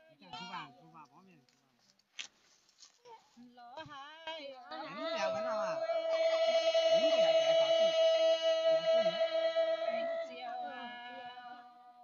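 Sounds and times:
lower voice singing: 0:04.7 - 0:12.0
woman singing long high note: 0:04.7 - 0:12.0.

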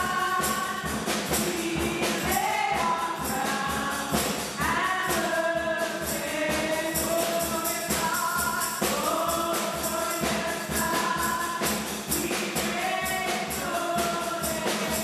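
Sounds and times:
percussion beat: 0:00.0 - 0:15.0
women singing gospel: 0:00.0 - 0:15.0.

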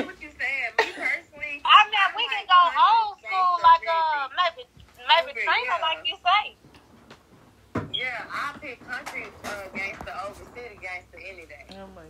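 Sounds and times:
people talking quietly: 0:00.0 - 0:06.8, 0:07.8 - 0:12.0.

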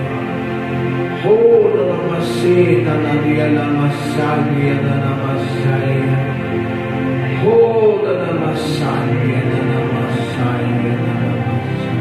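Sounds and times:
electric keyboard chords: 0:00.0 - 0:12.0
man chanting wordlessly: 0:01.2 - 0:06.5, 0:07.2 - 0:12.0.

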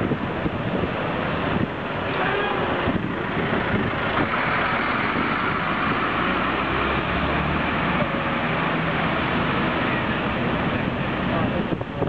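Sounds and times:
lorry engine hum: 0:00.0 - 0:12.0
traffic engines and tyre noise: 0:00.0 - 0:12.0.

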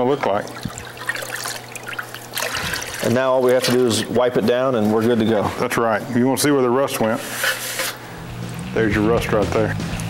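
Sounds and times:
liquid pouring and trickling: 0:00.3 - 0:03.6
liquid splashing into bath: 0:00.4 - 0:03.2.

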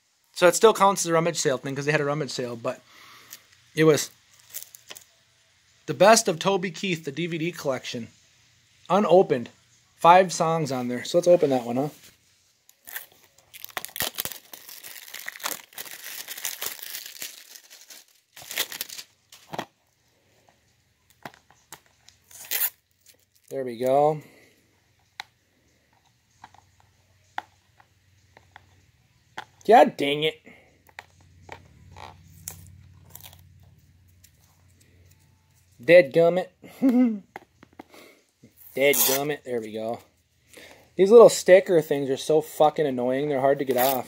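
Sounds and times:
shrink wrap crinkling and tearing: 0:04.0 - 0:05.1, 0:12.7 - 0:19.7, 0:21.1 - 0:23.6, 0:31.9 - 0:33.4, 0:43.6 - 0:44.0.

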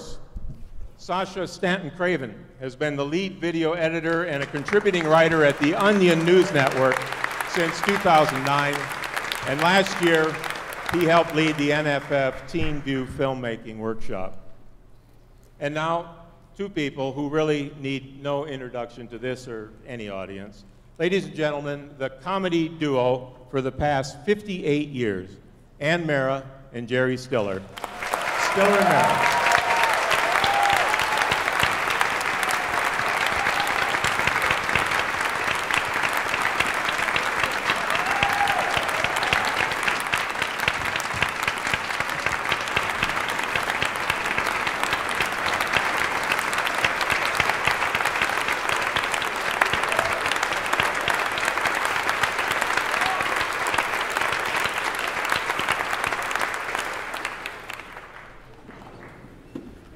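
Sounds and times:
audience applauding: 0:04.0 - 0:12.4, 0:27.7 - 0:59.2.

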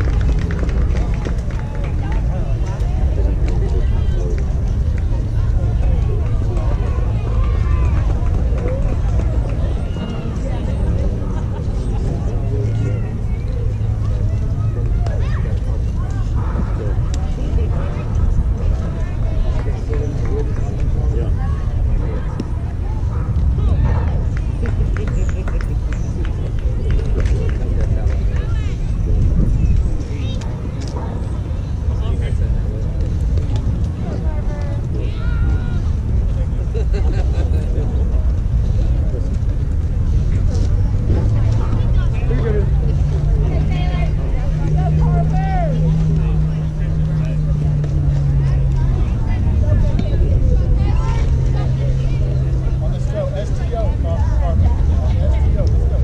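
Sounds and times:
constant low rumble: 0:00.0 - 0:56.0
vehicle engine hum: 0:00.0 - 0:56.0.

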